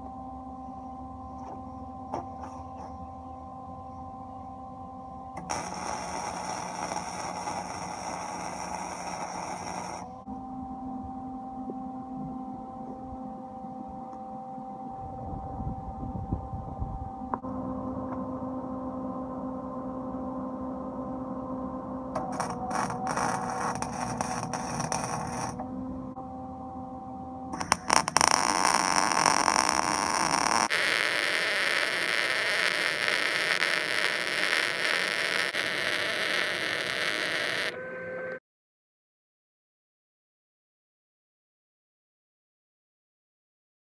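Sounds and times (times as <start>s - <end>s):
steady electrical hum: 0.0s - 37.8s
welding arc sizzling crackle: 5.4s - 10.2s, 22.2s - 25.6s, 27.6s - 37.8s.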